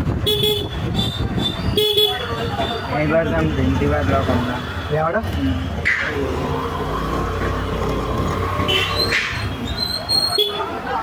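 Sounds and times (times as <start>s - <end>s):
engine and street noise: 0.0s - 11.0s
vehicle horn toot: 8.7s - 9.1s.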